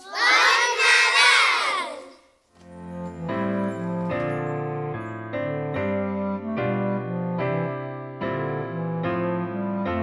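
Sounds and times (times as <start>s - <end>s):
children cheering: 0.0s - 2.1s.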